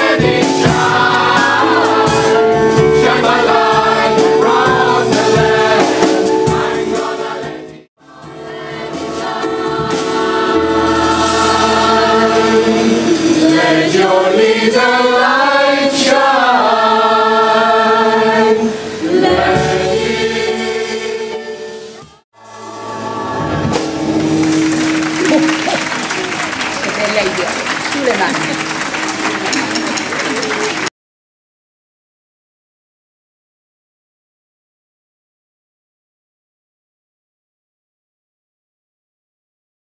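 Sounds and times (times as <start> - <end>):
gospel choir singing: 0.0 - 29.7
audience applause: 22.9 - 30.9.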